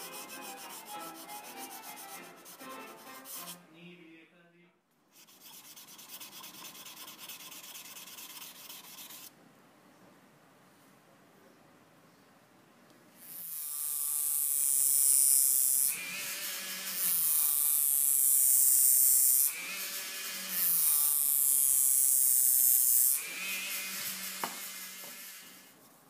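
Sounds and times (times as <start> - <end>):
rotary tool grinding metal: 13.2 - 25.7
rotary tool motor whine: 13.2 - 25.7.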